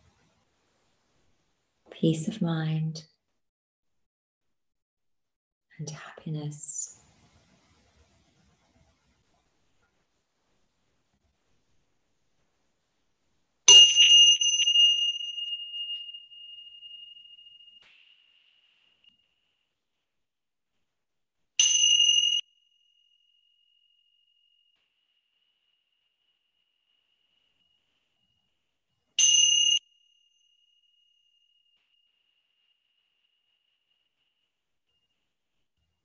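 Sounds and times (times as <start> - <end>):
small metal chime ringing: 13.7 - 18.5, 21.6 - 23.4, 29.2 - 32.7.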